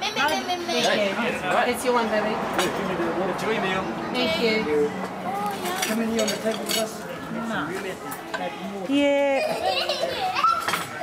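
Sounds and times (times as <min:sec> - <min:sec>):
plates and cutlery clinking: 0:05.6 - 0:08.5, 0:10.4 - 0:11.0.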